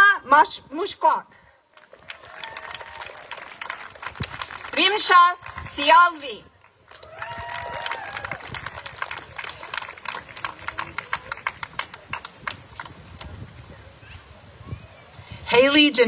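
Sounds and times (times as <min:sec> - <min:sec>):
audience clapping: 0:01.7 - 0:05.7, 0:06.5 - 0:13.4
short cheer: 0:02.0 - 0:03.5, 0:07.0 - 0:08.6.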